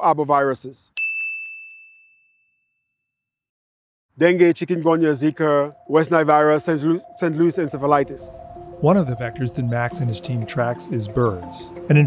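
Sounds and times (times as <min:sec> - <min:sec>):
high bell-like ding: 0:01.0 - 0:03.0.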